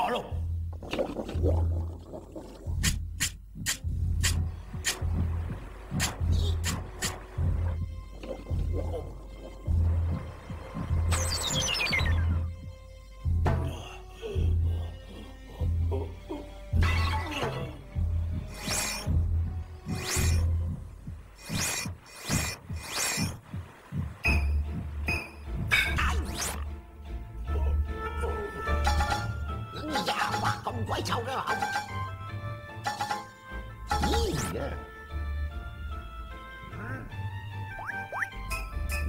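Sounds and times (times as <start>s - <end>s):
cartoon liquid surging throbs: 18.4s - 24.3s.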